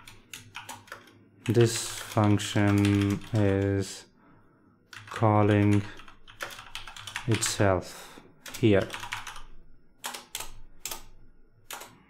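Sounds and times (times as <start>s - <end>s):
computer keyboard typing: 0.0s - 3.9s, 4.9s - 7.7s, 8.4s - 12.0s.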